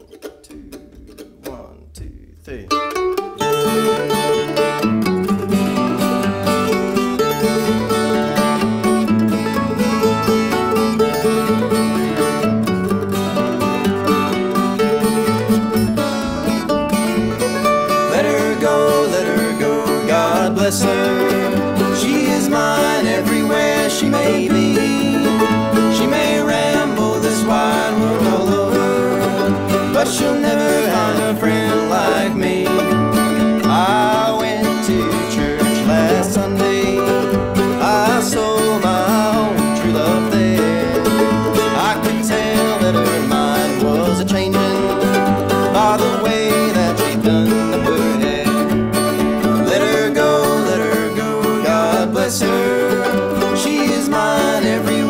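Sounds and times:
mandolin and acoustic guitar duet: 0.0 - 55.0.

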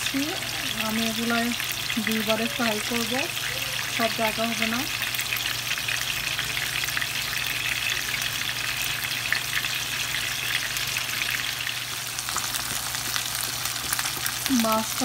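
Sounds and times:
fish sizzling in oil: 0.0 - 15.0.

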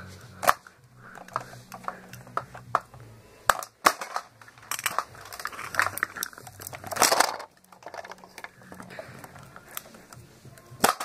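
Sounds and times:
plastic toy figures clicking: 0.4 - 10.2.

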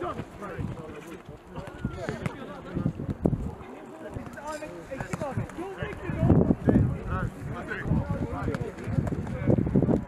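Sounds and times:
ball kicks: 1.6 - 2.4, 5.0 - 6.1.

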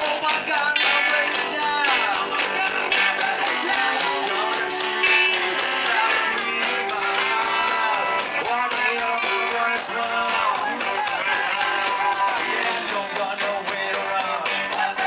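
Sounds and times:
live rock band: 0.0 - 15.0.

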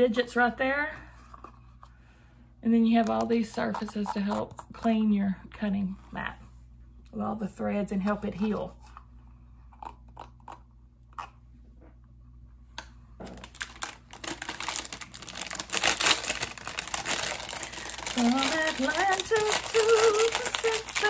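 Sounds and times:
plastic bag crinkling: 13.2 - 21.0
woman singing: 18.1 - 21.0.

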